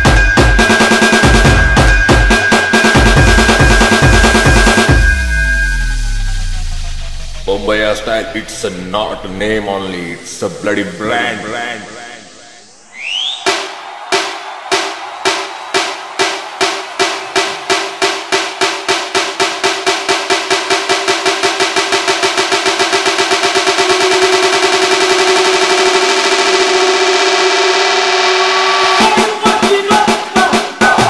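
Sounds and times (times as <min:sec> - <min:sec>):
steady ringing tone: 0:00.0 - 0:09.2
accelerating drum roll: 0:00.0 - 0:09.7, 0:13.3 - 0:31.0.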